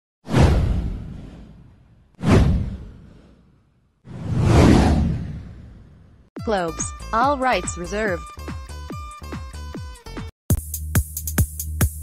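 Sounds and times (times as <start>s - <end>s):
whoosh sound effects: 0.3s - 3.5s, 4.1s - 6.0s.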